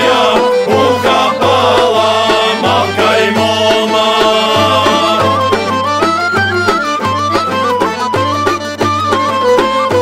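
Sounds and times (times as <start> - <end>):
instrumental folk dance music: 0.0 - 10.0.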